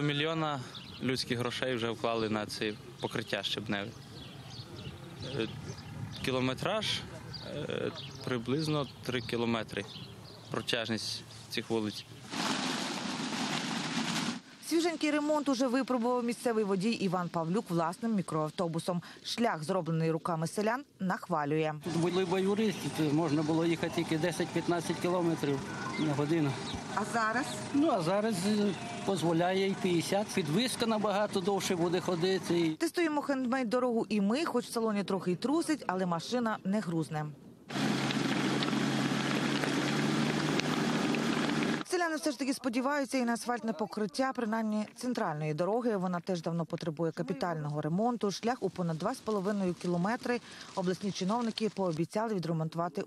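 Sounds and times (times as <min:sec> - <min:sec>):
tyres on loose gravel: 0:12.2 - 0:17.9, 0:21.8 - 0:32.8, 0:37.7 - 0:41.9, 0:48.3 - 0:52.1
minibus engine running: 0:21.9 - 0:32.7, 0:37.7 - 0:41.9.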